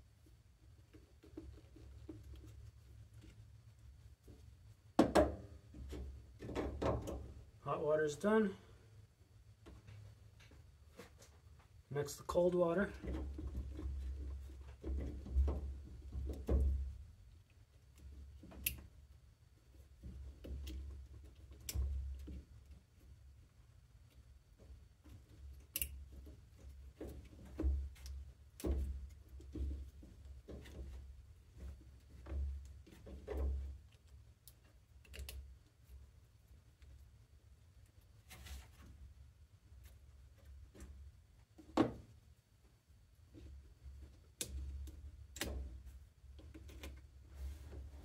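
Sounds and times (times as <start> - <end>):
dull handling bumps: 13.0 - 17.2.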